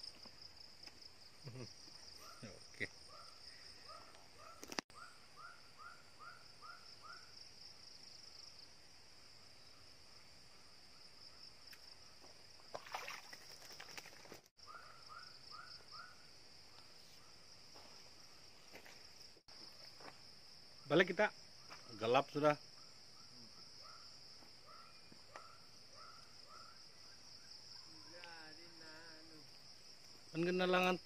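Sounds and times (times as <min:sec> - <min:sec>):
insects droning: 0:00.0 - 0:31.0.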